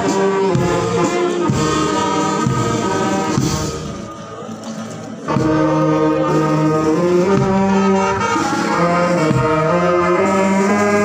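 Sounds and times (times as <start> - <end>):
brass band playing hymn: 0.0 - 11.0
people singing: 0.0 - 11.0.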